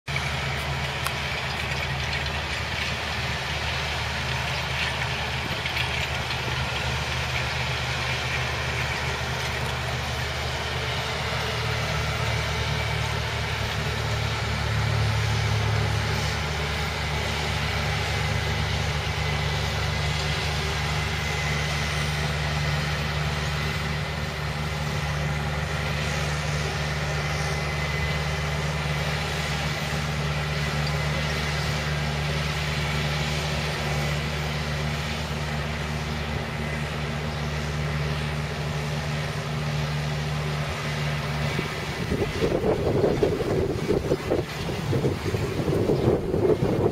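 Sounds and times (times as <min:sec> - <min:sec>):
tractor diesel engine under load: 0:00.0 - 0:46.9.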